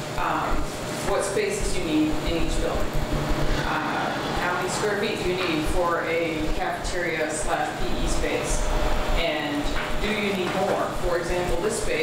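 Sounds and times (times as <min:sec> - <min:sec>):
person speaking: 0:00.0 - 0:08.6.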